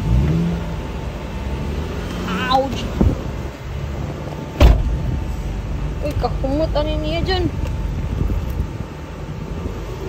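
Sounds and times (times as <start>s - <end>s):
car engine idling: 0.0s - 10.0s
sharp thump: 4.6s - 5.0s.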